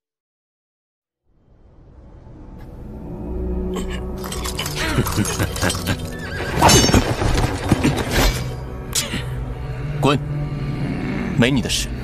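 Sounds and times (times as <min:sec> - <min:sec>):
dramatic background music: 0:01.8 - 0:12.0
horse whinnying: 0:05.6 - 0:08.2.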